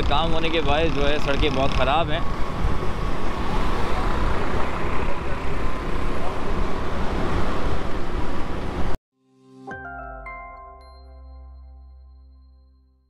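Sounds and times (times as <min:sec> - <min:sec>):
road traffic noise: 0:00.0 - 0:09.0.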